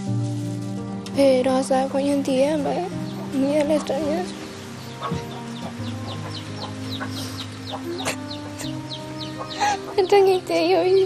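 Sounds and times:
chicks peeping and clucking: 0:01.8 - 0:11.0.

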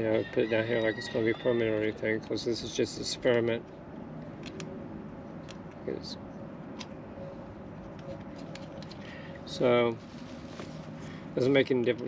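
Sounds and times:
steady low background noise: 0:00.0 - 0:12.0.

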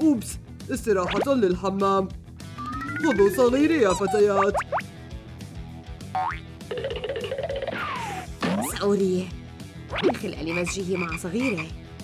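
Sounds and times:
light background music: 0:00.0 - 0:12.0
falling whistle-like glide: 0:02.6 - 0:04.2
wavering tone: 0:02.6 - 0:04.7
cartoon rising boing: 0:02.6 - 0:04.8.

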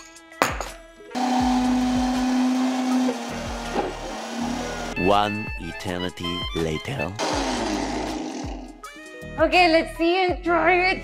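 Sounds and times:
blender motor humming: 0:01.2 - 0:05.0, 0:07.2 - 0:08.8.

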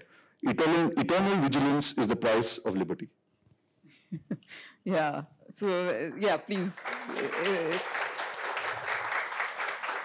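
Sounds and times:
audience applauding: 0:06.5 - 0:10.0.

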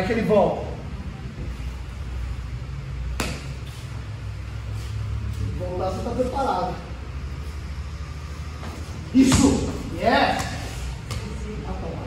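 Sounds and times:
steady low hum: 0:00.0 - 0:12.0
sharp slap: 0:03.1 - 0:03.6.

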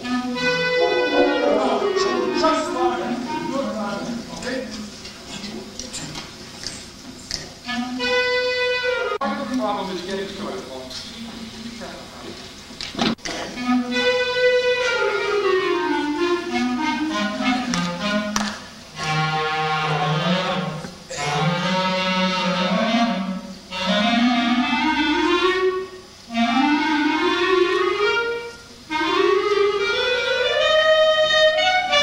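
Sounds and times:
concert band playing: 0:00.0 - 0:05.4, 0:07.6 - 0:10.6, 0:12.8 - 0:32.0.

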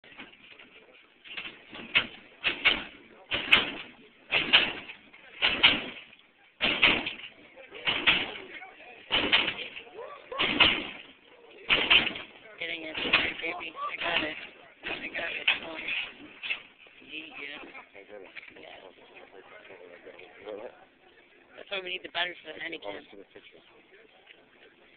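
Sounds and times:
hydraulic suspension bangs: 0:00.0 - 0:17.7
voices: 0:00.0 - 0:24.9.

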